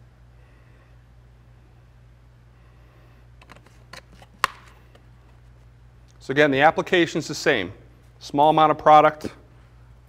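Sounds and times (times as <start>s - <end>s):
plastic bottle clicks: 4.4s - 4.7s.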